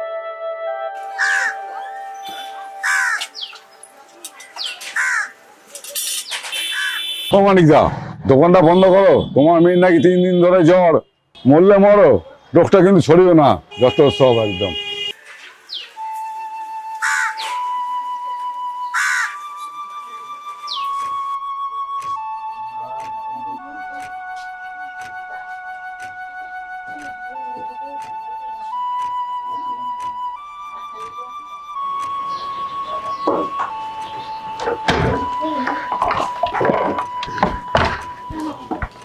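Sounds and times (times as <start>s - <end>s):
flute long note: 0.0s - 2.8s, 16.0s - 20.6s, 21.2s - 35.8s
synthesizer chord: 0.0s - 4.5s
crow cawing: 1.1s - 3.4s, 4.9s - 5.4s, 6.6s - 7.1s, 17.0s - 17.7s, 18.9s - 19.5s.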